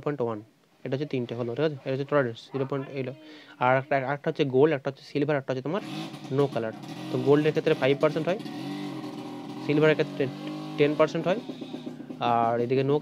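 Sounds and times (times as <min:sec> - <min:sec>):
man talking: 0:00.0 - 0:08.4, 0:09.7 - 0:11.4, 0:12.2 - 0:13.0
vehicle engine running: 0:05.8 - 0:12.6.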